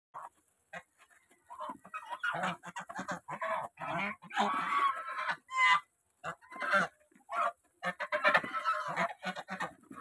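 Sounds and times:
geese honking: 0:00.2 - 0:10.0.

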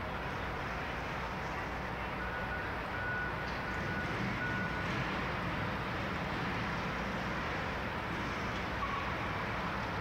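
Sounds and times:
city street hum: 0:00.0 - 0:10.0.

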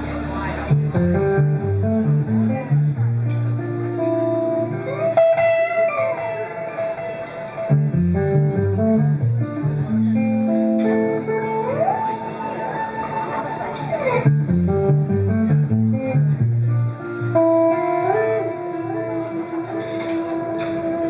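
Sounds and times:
bass line: 0:00.0 - 0:04.8, 0:07.7 - 0:10.2, 0:14.2 - 0:18.6
electric guitar lead line: 0:00.0 - 0:21.0
drums: 0:13.9 - 0:21.0.

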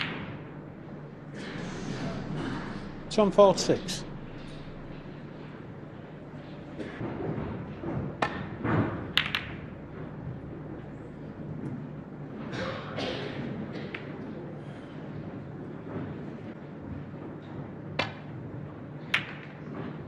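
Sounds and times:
low arena hum: 0:00.0 - 0:20.0
snooker balls clicking: 0:07.8 - 0:10.9, 0:19.0 - 0:20.0.

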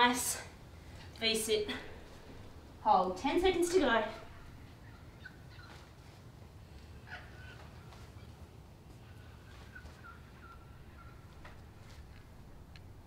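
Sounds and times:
low steady hum: 0:00.0 - 0:13.0
distant birds calling: 0:00.6 - 0:13.0.

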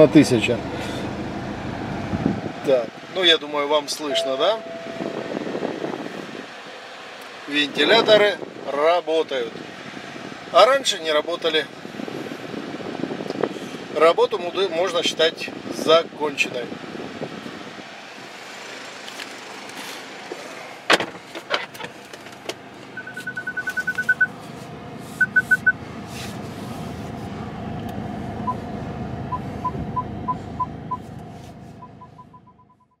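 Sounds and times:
car electronic beeps: 0:04.1 - 0:05.4, 0:23.0 - 0:24.3, 0:25.2 - 0:25.8, 0:28.4 - 0:28.6, 0:29.3 - 0:31.1, 0:31.8 - 0:33.0
car cabin hum: 0:04.1 - 0:06.6, 0:20.9 - 0:32.6.

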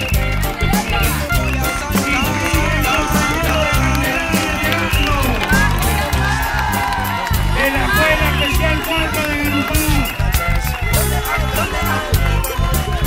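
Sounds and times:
drum beat and percussion: 0:00.0 - 0:13.0.

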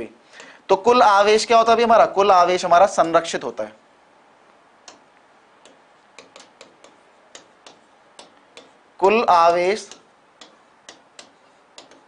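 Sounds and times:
pen tapping on whiteboard screen: 0:04.9 - 0:08.8, 0:09.8 - 0:12.0.

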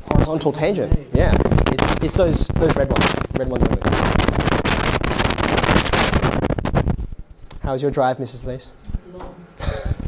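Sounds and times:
microphone rubbing on clothing: 0:01.0 - 0:07.4.

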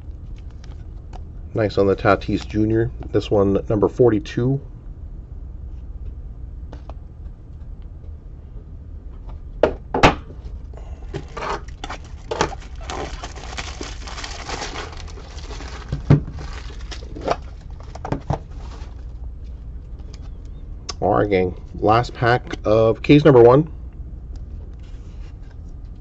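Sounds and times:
steady low hum: 0:00.0 - 0:26.0
wrapper crinkling: 0:11.1 - 0:19.2.

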